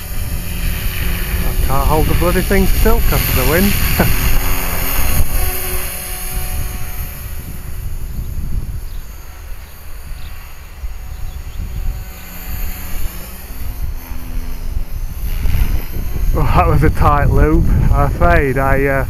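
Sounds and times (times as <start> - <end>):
rc helicopter motor whine: 0.0 - 19.0
wind rumble on microphone: 0.0 - 19.0.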